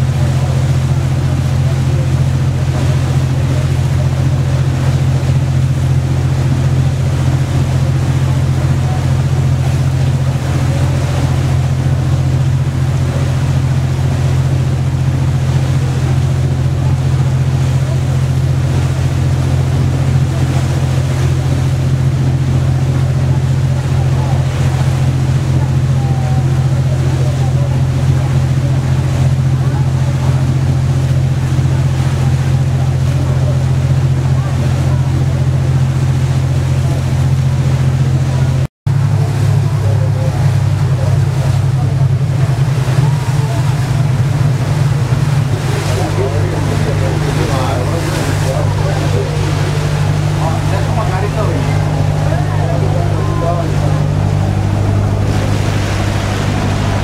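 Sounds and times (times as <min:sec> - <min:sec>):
boat engine drone: 0:00.0 - 0:57.0
water noise: 0:00.0 - 0:57.0.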